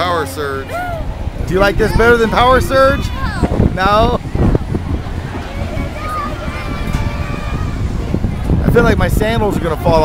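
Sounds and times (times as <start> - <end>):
faint voices: 0.0 - 10.0
wind rushing over microphone: 0.4 - 10.0.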